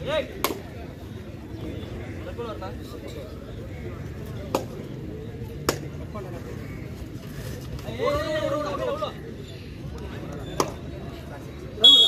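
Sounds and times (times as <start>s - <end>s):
spectators background noise: 0.0s - 12.0s.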